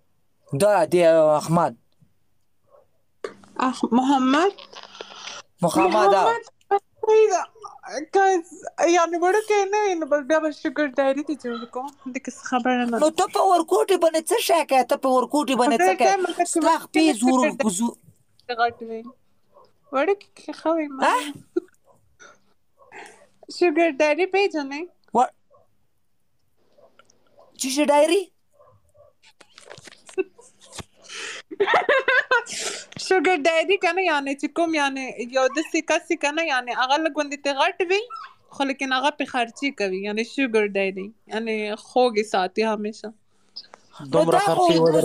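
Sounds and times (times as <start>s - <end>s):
man talking: 0.5s - 1.8s, 5.6s - 6.4s, 17.1s - 18.0s, 44.0s - 45.0s.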